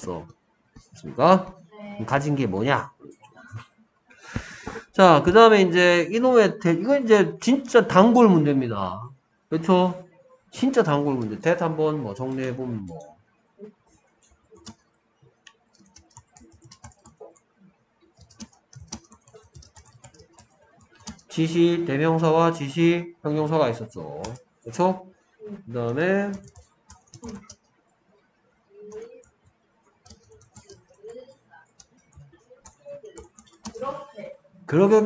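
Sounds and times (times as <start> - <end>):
computer keyboard typing: 14.2 - 14.8, 15.5 - 17.5, 18.1 - 21.5, 24.1 - 24.4, 25.9 - 27.7, 28.8 - 34.0.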